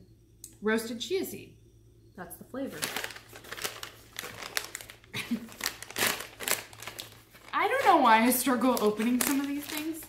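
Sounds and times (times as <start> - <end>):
snack pouch crinkling: 2.8 - 10.0.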